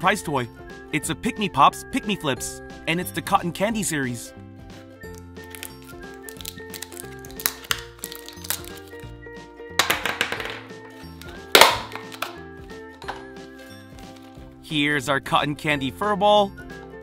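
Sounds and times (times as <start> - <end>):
light background music: 0.0 - 17.0
crackling plastic: 5.1 - 9.0, 9.8 - 12.4, 13.9 - 14.4
sharp plastic snap: 6.8 - 8.8, 11.2 - 12.4.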